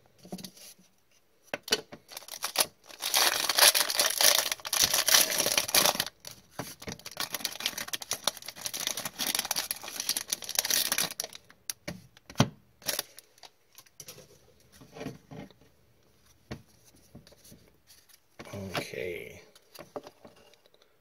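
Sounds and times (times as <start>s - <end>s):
foil card pack tearing and crinkling: 2.1s - 11.4s, 12.8s - 13.2s.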